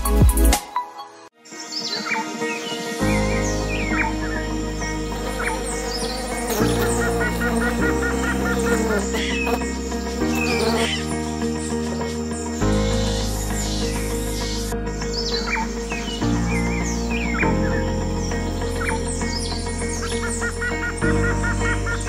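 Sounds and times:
calm music with held chords: 0.0 - 22.0
birds chirping: 1.4 - 22.0.

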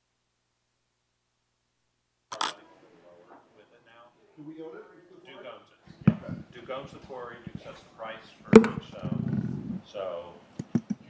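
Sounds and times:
faint indistinct voices: 2.3 - 11.0.

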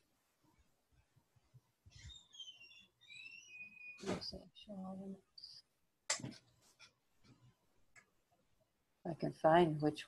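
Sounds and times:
faint bird chirping: 1.9 - 5.6.

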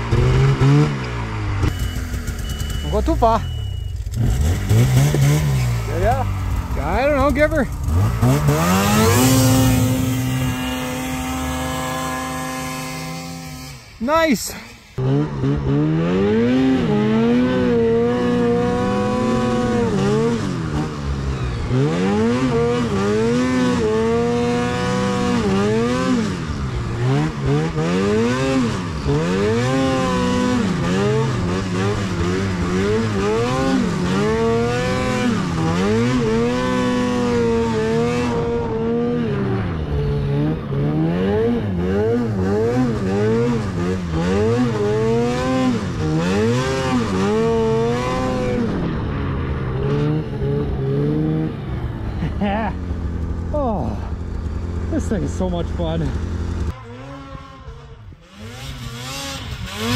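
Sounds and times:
snowmobile engine revving: 0.0 - 59.9.

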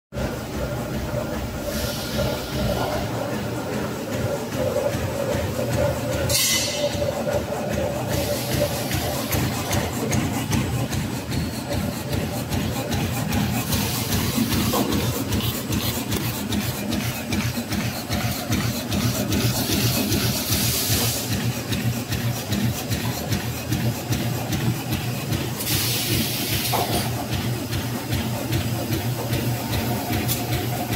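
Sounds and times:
bag making machine clattering: 0.2 - 30.9.

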